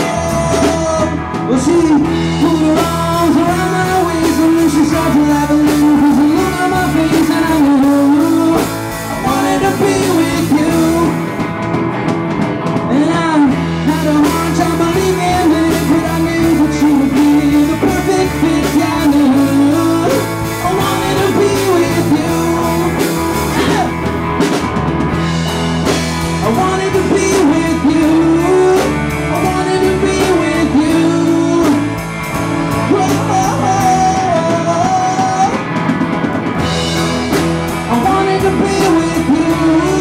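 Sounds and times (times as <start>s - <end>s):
electric organ: 0.0s - 40.0s
live rock band playing: 0.0s - 40.0s.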